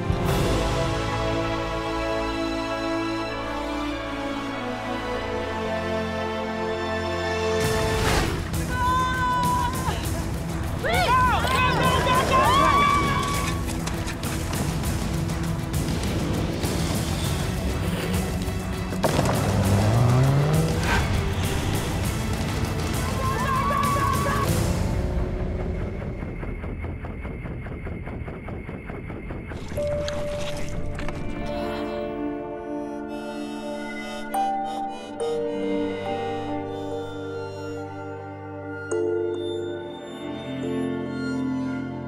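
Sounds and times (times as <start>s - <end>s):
music: 0.0s - 42.0s
off-road engines revving: 15.9s - 25.6s
sharp knocks and impacts: 18.9s - 20.0s.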